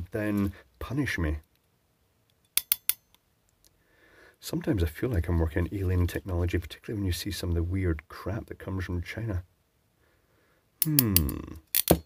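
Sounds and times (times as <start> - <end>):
crimping pliers clicking: 2.6 - 3.1, 10.8 - 12.0.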